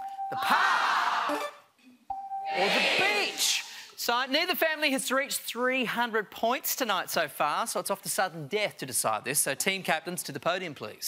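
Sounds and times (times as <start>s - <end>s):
studio audience reacting: 0.3s - 1.4s, 2.5s - 3.8s.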